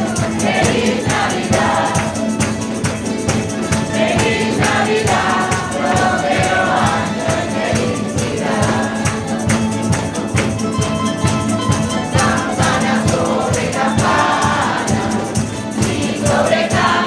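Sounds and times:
mixed choir singing: 0:00.0 - 0:10.2, 0:12.0 - 0:17.0
hand percussion beat: 0:00.0 - 0:17.0
strummed guitars: 0:00.0 - 0:17.0.

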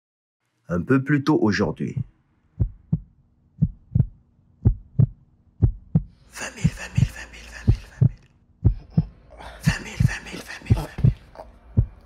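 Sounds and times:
heartbeat thumps: 0:01.9 - 0:12.0.

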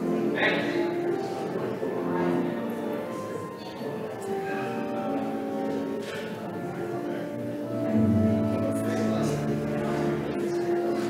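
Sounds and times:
pipe organ sustained chords: 0:00.0 - 0:11.0.

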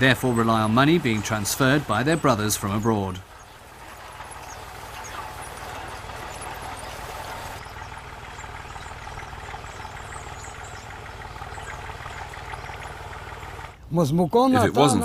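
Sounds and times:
tractor engine running: 0:00.0 - 0:13.9.

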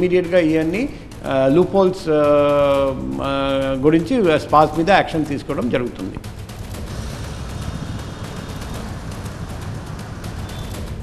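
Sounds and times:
bass-heavy background music: 0:00.0 - 0:11.0.

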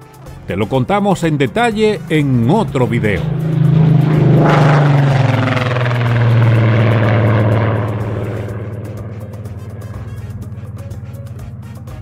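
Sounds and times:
background music: 0:00.0 - 0:12.0
propeller plane engine droning: 0:00.0 - 0:12.0.

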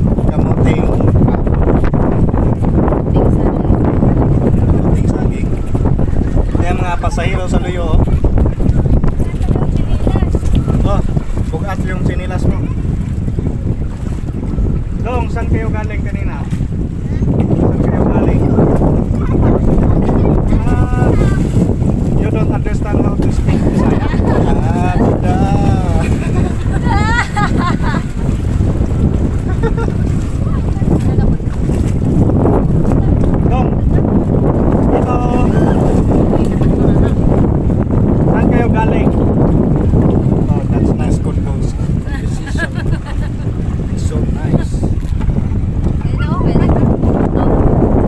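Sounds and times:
wind buffeting microphone: 0:00.0 - 0:48.0.

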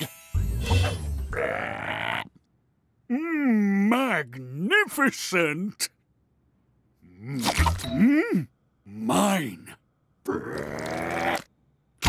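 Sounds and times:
cartoon toad croak: 0:01.3 - 0:02.4.

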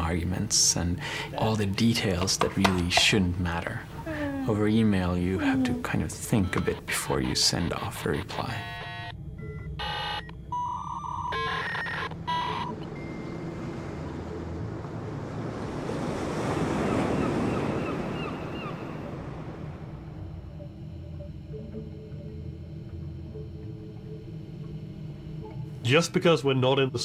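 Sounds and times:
low steady hum: 0:00.0 - 0:16.2, 0:18.7 - 0:27.0
sea surf washing in: 0:13.0 - 0:20.2.

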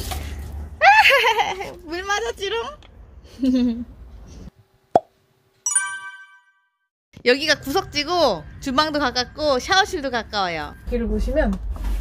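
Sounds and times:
bright chime: 0:05.7 - 0:06.6.

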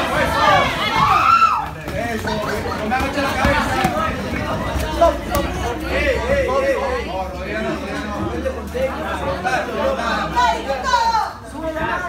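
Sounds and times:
people calling and chattering: 0:00.0 - 0:12.0.

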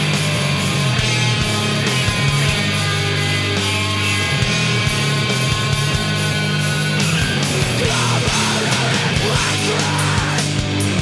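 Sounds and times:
bass guitar: 0:00.0 - 0:11.0
distorted electric guitars: 0:00.0 - 0:11.0
drums: 0:00.0 - 0:11.0.

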